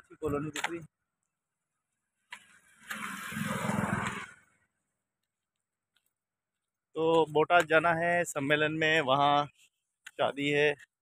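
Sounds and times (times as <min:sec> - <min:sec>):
motor vehicle engine: 0:02.6 - 0:04.7.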